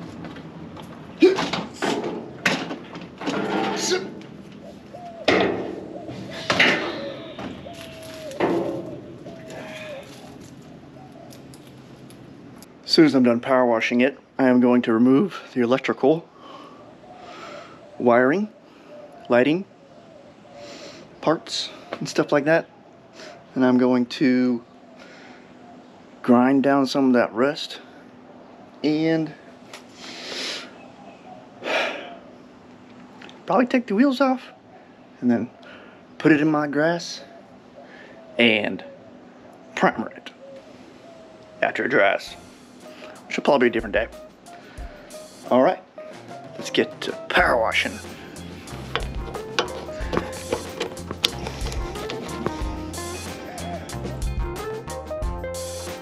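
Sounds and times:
knocks and clanks with rattle: 1.4s - 4.3s, 5.3s - 7.6s, 8.4s - 9.1s
man breathing: 9.4s - 10.3s, 16.3s - 18.0s, 20.4s - 22.0s, 25.0s - 25.7s, 29.4s - 30.9s, 31.6s - 32.3s, 34.7s - 36.1s, 37.8s - 38.4s, 42.4s - 43.3s, 44.5s - 45.4s, 48.0s - 50.4s, 51.2s - 54.0s.

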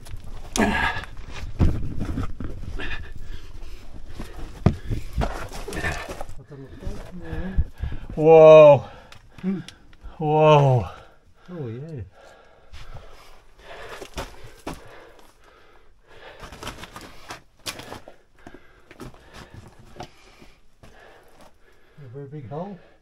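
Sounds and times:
boots and hands on loose rock: 3.6s - 8.0s, 13.7s - 15.3s, 16.2s - 21.5s.

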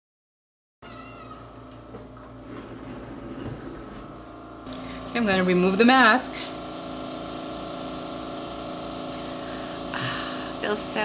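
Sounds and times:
electrical hum with cooling fan: 0.8s - 11.0s.

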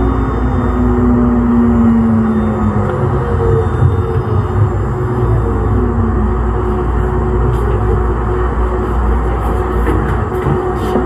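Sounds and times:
light rail car rumbling: 0.0s - 11.0s
mid-pitched hum: 0.0s - 11.0s.

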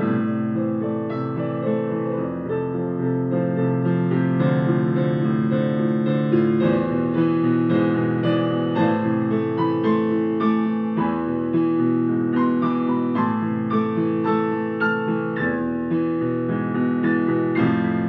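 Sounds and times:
solo piano playing: 0.0s - 18.0s.

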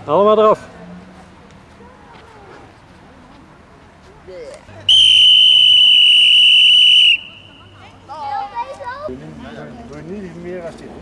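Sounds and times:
loud whistle blast: 4.9s - 7.7s.

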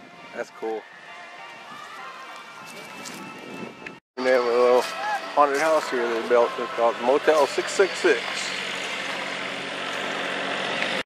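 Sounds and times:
engine hum: 4.2s - 11.0s.

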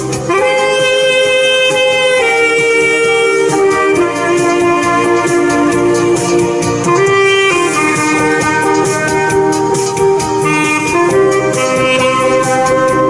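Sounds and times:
keyboard and beat backing: 0.0s - 13.0s
saxophone melody: 0.0s - 13.0s.

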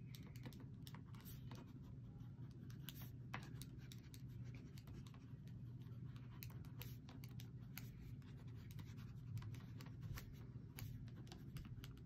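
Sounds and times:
low steady hum: 0.0s - 12.0s
ballpoint pen scratching paper: 0.4s - 12.0s.

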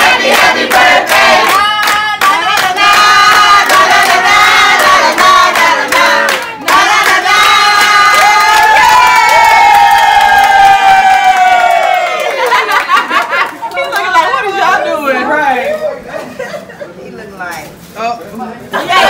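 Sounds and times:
group singing: 0.0s - 8.7s
people clapping in time: 0.0s - 14.2s.

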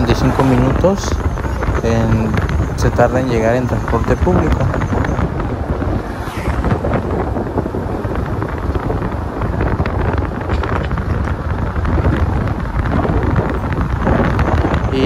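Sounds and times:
road and engine noise: 0.0s - 15.0s
wind rushing over microphone: 0.0s - 15.0s.

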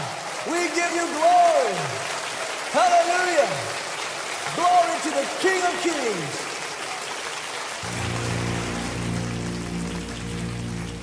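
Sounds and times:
crowd applause: 0.0s - 11.0s
sustained keyboard chord: 7.8s - 11.0s.

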